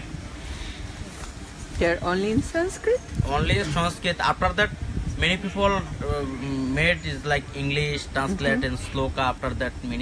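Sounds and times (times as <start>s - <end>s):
low background rumble: 0.0s - 10.0s
man speaking: 3.3s - 10.0s.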